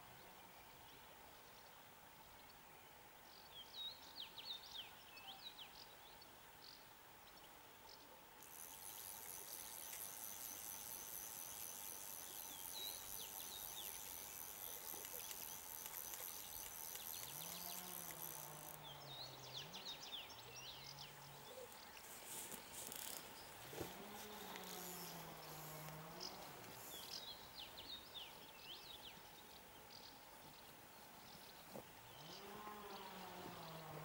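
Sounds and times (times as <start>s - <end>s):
high-pitched insect buzz: 8.4s - 19.5s, 22.0s - 27.4s
small birds chirping: 8.4s - 34.0s.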